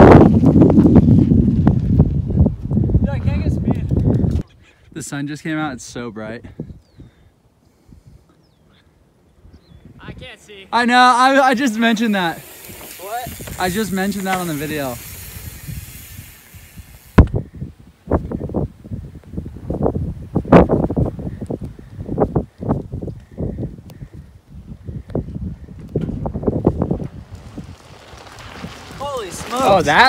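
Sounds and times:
wind buffeting microphone: 0.0 - 4.6, 6.4 - 8.3, 9.3 - 10.4, 11.7 - 30.0.

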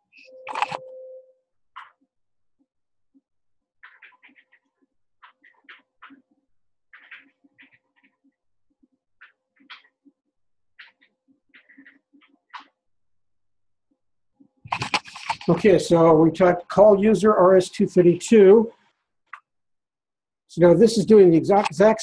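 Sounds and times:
computer keyboard typing: 0.4 - 0.9.

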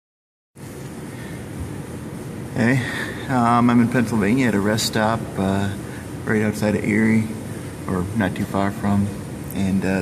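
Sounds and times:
steady rushing noise with rumble: 0.6 - 10.0.

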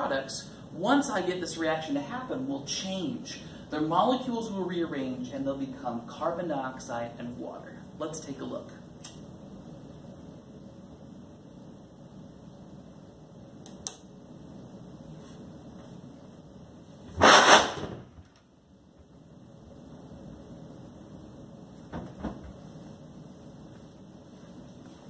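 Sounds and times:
loud flame whoosh: 17.1 - 18.2.

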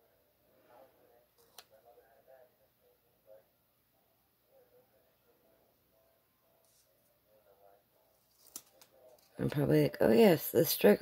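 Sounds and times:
handling paper stickers: 8.2 - 9.4.

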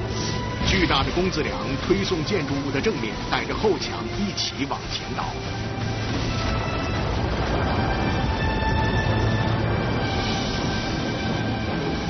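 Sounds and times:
music: 0.0 - 12.0
rumble of building collapsing: 5.8 - 12.0.

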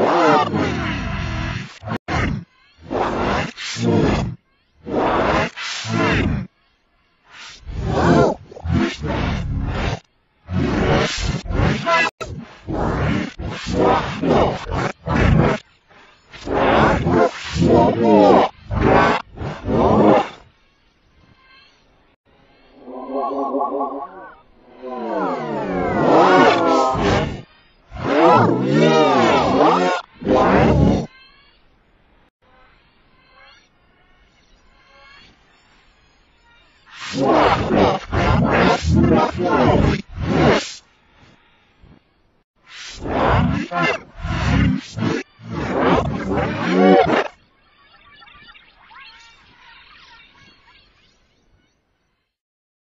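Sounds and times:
warbling tone: 22.7 - 25.1
distorted cartoon voice slides: 22.8 - 27.4, 28.0 - 31.1.

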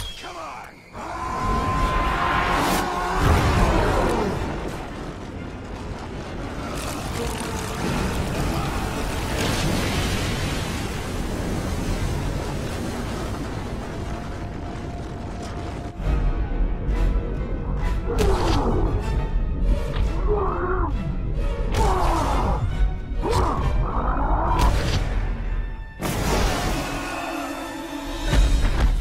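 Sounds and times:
dramatic background music: 0.0 - 29.0
rumbling collapse: 1.0 - 16.7.

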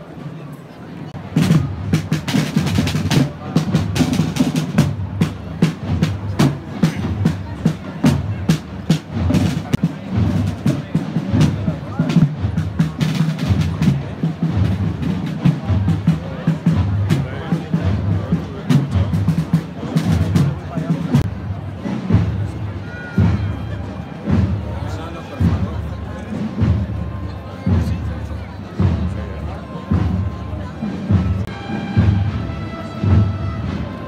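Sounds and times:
snare and bass drums: 1.2 - 34.0.

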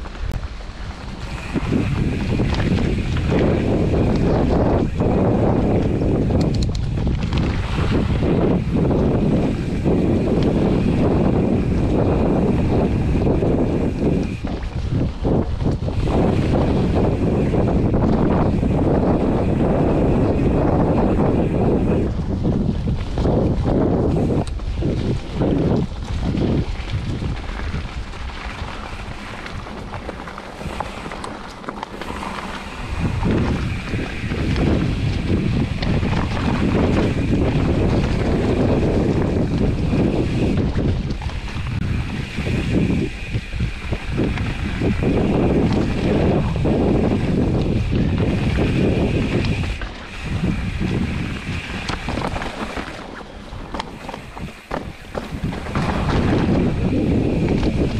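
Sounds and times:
bike tyres rumbling on dirt trail: 0.0 - 57.9
wind buffeting microphone: 0.0 - 57.9.

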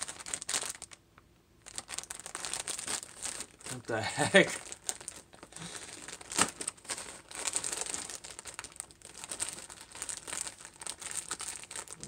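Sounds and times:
plastic packaging crinkling: 0.0 - 1.0, 1.6 - 12.0.

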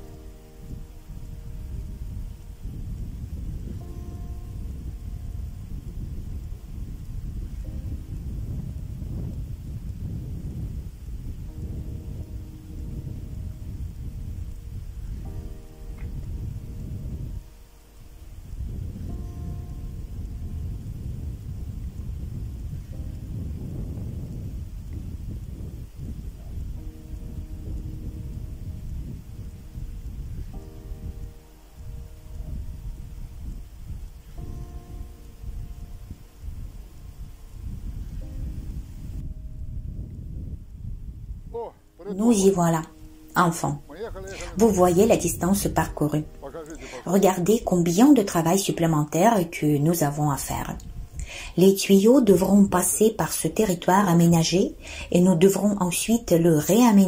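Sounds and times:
quiet background music: 0.0 - 57.0
wind buffeting microphone: 0.0 - 57.0.

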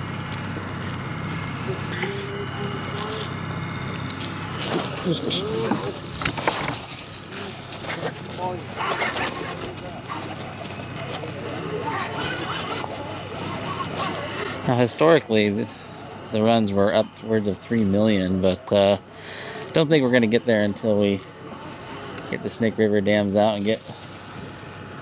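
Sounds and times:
boat motor droning: 0.0 - 25.0
muffled voices: 0.0 - 25.0.

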